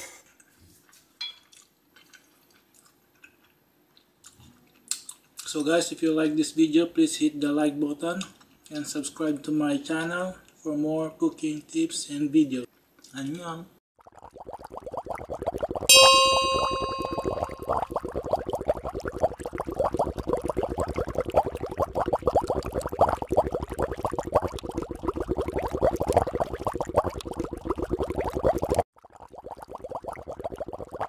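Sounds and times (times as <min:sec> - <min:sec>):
water boiling in a pot: 0:14.0 - 0:31.0
bell-like ding: 0:15.9 - 0:17.6.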